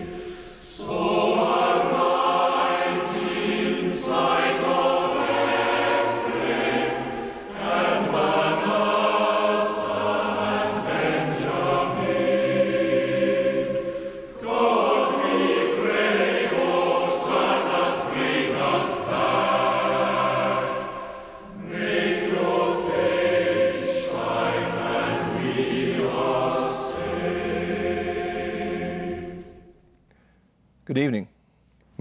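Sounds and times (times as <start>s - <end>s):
choir singing held chords: 0.0s - 30.1s.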